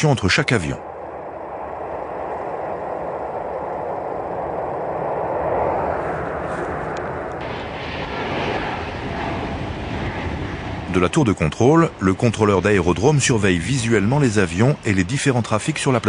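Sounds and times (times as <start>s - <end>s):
jet engines rushing: 0.0s - 16.0s.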